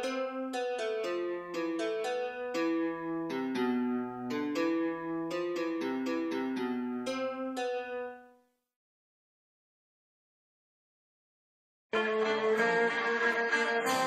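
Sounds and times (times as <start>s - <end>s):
keyboard playing quick melody: 0.0s - 8.4s.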